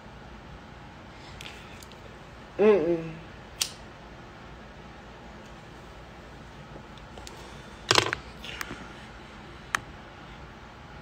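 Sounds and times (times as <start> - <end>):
phone handling clicks and rustles: 7.2 - 8.8.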